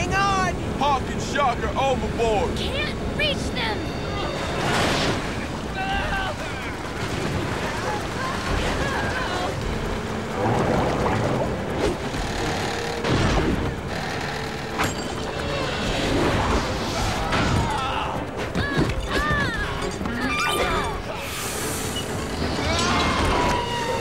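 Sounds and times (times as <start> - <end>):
waves crashing: 4.2 - 9.6.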